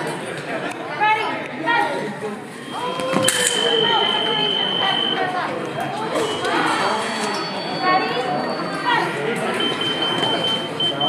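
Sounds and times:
voices in a hall: 0.0 - 11.0
scoring machine tone: 2.6 - 8.9, 9.5 - 11.0.

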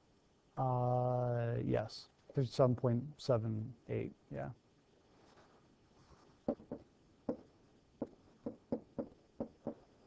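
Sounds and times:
stylus tapping on tablet screen: 6.4 - 9.8.

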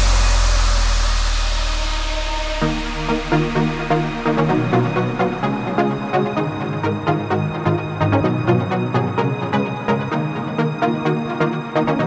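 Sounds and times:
held deep bass note: 0.0 - 6.5.

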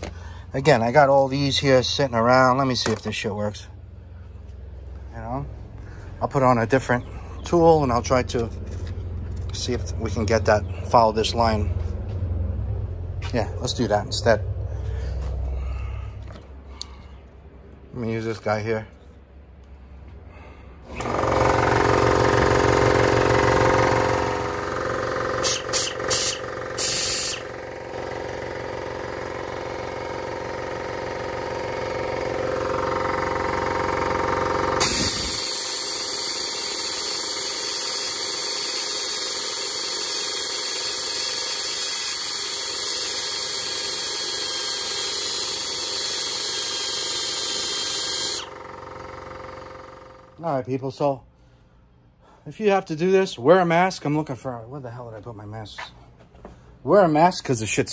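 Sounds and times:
die grinder grinding: 20.9 - 50.3.

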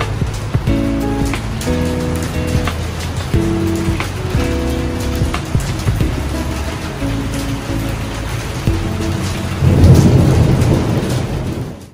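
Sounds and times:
background music with held notes: 0.0 - 11.8
rain: 0.0 - 11.9
low roll of thunder: 8.6 - 11.9.

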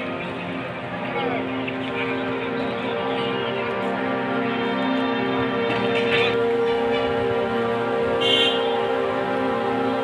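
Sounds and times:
bright musical flourishes: 0.0 - 10.0
drone-like music chords: 0.0 - 10.0.

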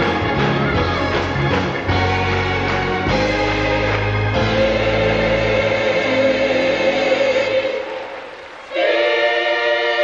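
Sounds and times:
gospel choir singing held chords: 1.7 - 10.0.

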